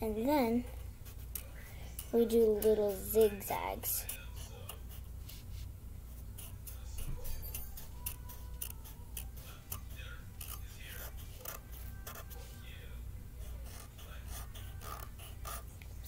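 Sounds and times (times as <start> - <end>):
faint television voices: 0.0 - 16.0
marker scratching on paper: 0.7 - 12.6, 13.4 - 15.8.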